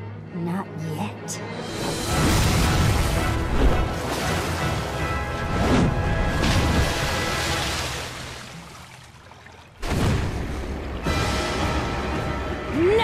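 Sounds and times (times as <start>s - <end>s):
dramatic music: 0.0s - 8.6s, 9.8s - 13.0s.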